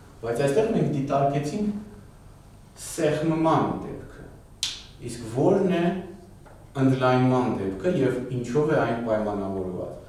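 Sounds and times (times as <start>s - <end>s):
man speaking: 0.2s - 1.9s, 2.8s - 4.4s, 5.0s - 6.2s, 6.8s - 10.0s.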